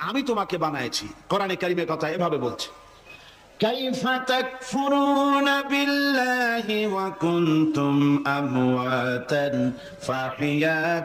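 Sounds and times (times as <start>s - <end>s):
man chanting melodic recitation: 3.6s - 11.0s.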